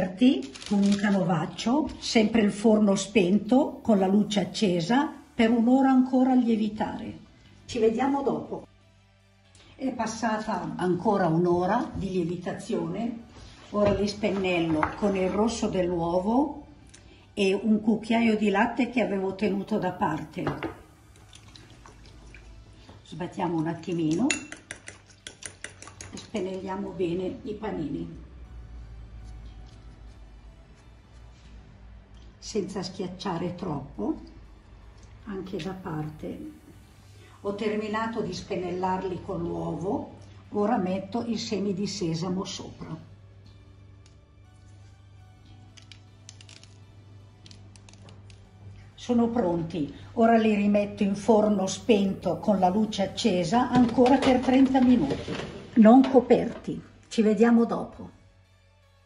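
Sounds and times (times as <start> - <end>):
faint background music: 0.0 - 59.0
fork beating egg in bowl: 23.6 - 26.4.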